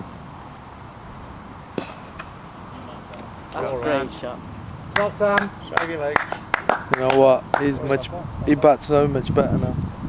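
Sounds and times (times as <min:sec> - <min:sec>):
low outdoor background noise: 0:00.0 - 0:10.0
cricket bat striking ball: 0:01.8 - 0:02.4.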